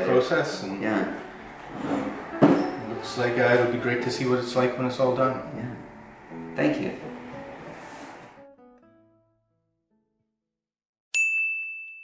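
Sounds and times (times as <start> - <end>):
high bell-like ding: 2.3 - 3.7, 11.2 - 12.0.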